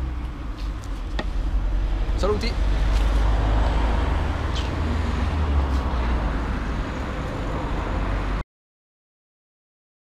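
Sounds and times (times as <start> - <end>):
road traffic rumble: 0.0 - 8.4.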